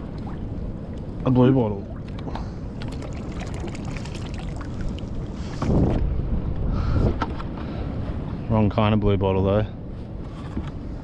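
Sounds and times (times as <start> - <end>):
water moving around kayak: 0.0 - 8.4
wind on microphone: 0.0 - 9.2.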